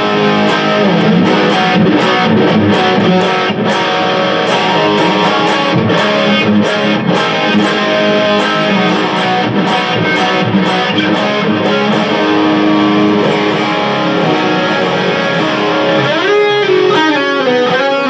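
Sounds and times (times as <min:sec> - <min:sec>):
electric guitar notes and chords: 0:00.0 - 0:18.0
guitar string slide: 0:00.0 - 0:18.0.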